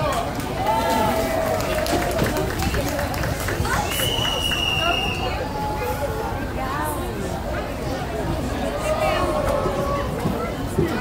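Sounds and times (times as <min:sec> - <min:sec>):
audience voices: 0:00.0 - 0:11.0.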